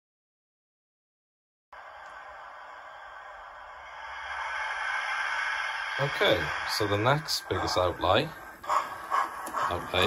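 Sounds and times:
steam hiss from small speaker: 1.8 - 7.4.

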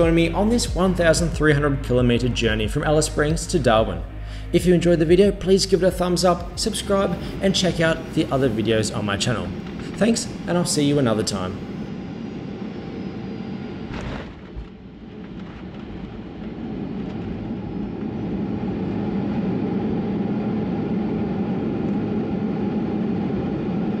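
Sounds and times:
airplane cabin noise: 0.0 - 24.0
jet engines rumbling: 0.0 - 24.0.

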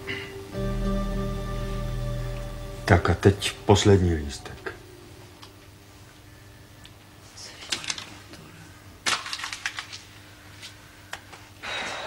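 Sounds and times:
faint steady hum: 0.0 - 12.0
paper rustling and crinkling: 7.5 - 8.4, 9.0 - 10.8.

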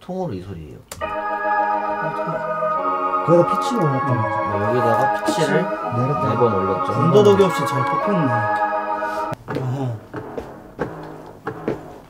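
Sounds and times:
low sustained note: 1.0 - 9.4.

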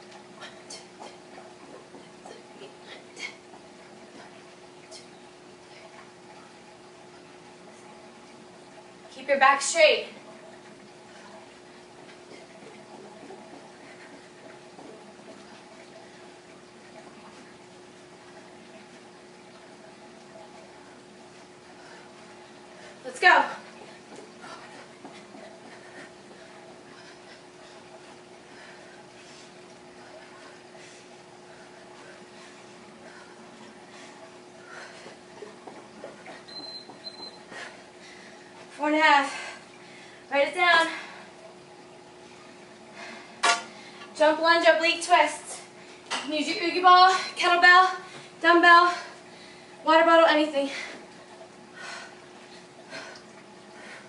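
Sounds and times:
low filter hum: 0.0 - 54.0
water trickling: 0.0 - 54.0
interval timer beeps: 36.5 - 37.4.

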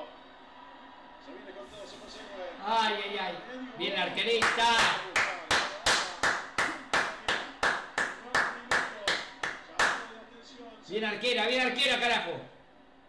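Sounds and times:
person clapping: 4.4 - 10.1.

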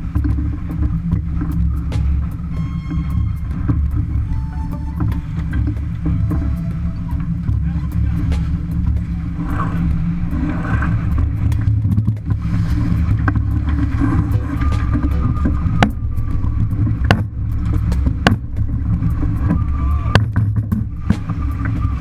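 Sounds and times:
water rushing along hull: 0.0 - 22.0
wind buffeting microphone: 0.0 - 22.0.

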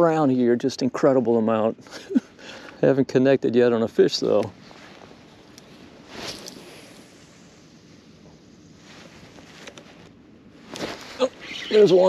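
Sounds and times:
faint outdoor hiss: 0.0 - 12.0
brief rustle: 4.3 - 7.1, 8.8 - 11.8.

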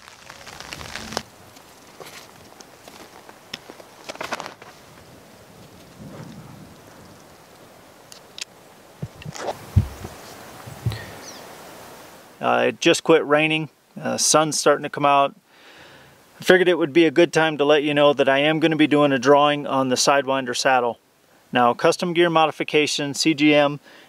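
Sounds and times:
climbing rope rustling: 0.0 - 8.3, 9.0 - 11.3
faint steady hiss: 0.0 - 24.0
gear clicks and thumps: 9.0 - 11.0.

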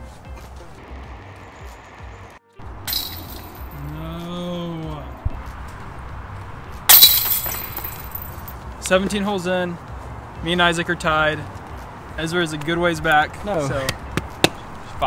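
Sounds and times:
metallic clink: 2.8 - 3.8, 6.9 - 8.6
disc striking basket chains: 2.8 - 3.9, 6.9 - 8.6.

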